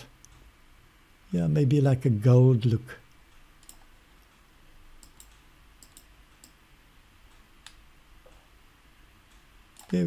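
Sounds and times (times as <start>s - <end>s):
low background hiss: 0.0s - 10.0s
computer mouse clicks: 3.1s - 6.6s, 7.3s - 8.6s, 9.3s - 10.0s.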